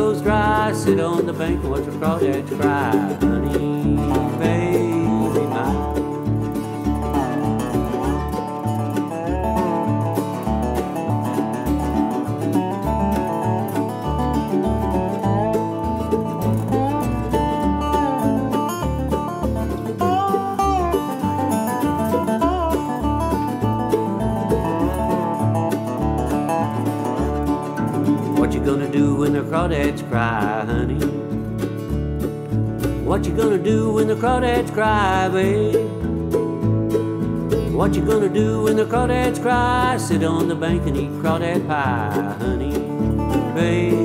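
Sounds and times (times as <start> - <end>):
plucked strings melody: 0.0 - 44.0
steady bass line: 0.0 - 44.0
string band playing: 0.0 - 44.0.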